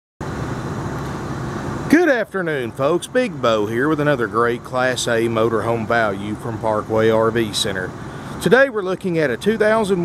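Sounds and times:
low rumbling background noise: 0:00.2 - 0:10.0.

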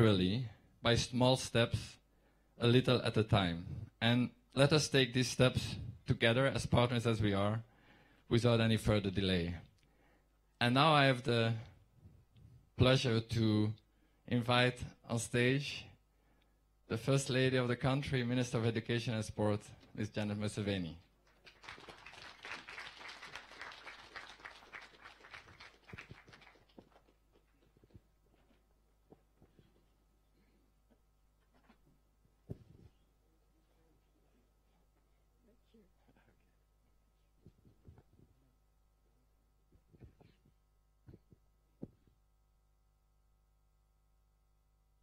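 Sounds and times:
faint audience applause: 0:21.3 - 0:27.6.

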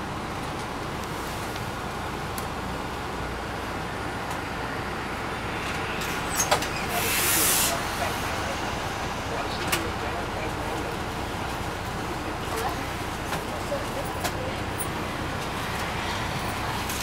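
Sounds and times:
bus engine drone: 0:00.0 - 0:17.0
pneumatic air hiss: 0:06.4 - 0:07.8.

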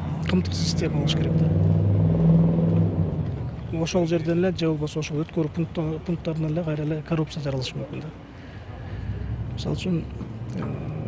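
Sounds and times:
vehicle engine passing: 0:00.0 - 0:04.9, 0:08.7 - 0:11.0.

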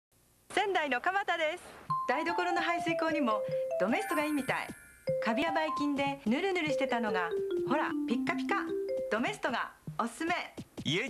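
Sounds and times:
woman speaking: 0:00.5 - 0:10.6
bright chime: 0:01.9 - 0:06.0
advert music: 0:01.9 - 0:10.0.

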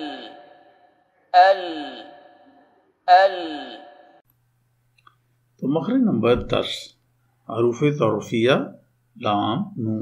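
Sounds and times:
recorded voice pronouncing syllable: 0:00.0 - 0:00.7, 0:01.3 - 0:04.2.

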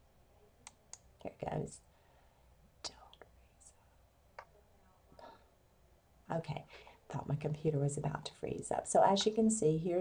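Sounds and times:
faint breathy whisper: 0:01.7 - 0:05.6.

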